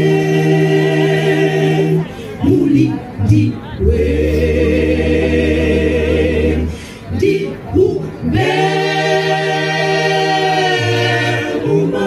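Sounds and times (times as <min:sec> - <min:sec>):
mixed choir singing a cappella: 0:00.0 - 0:12.0.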